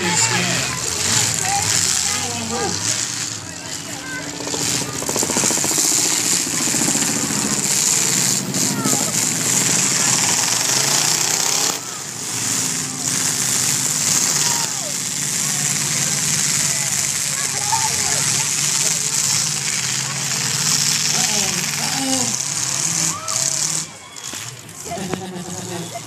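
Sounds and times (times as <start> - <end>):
car engines revving loudly: 0.0 - 26.0.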